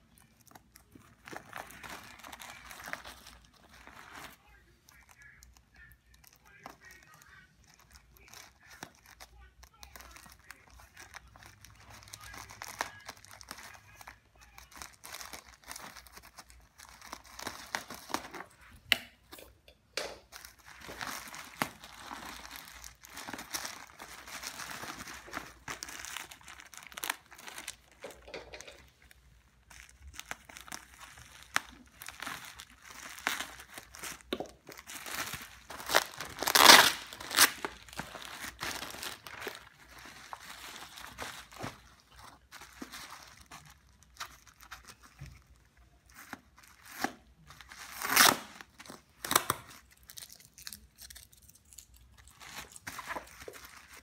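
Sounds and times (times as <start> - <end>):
plastic mailer crinkling: 0.0 - 19.4, 20.2 - 54.0.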